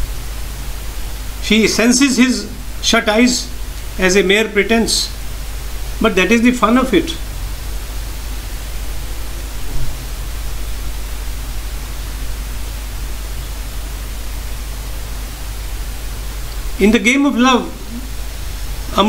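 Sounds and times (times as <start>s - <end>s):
steady hiss: 0.0s - 19.0s.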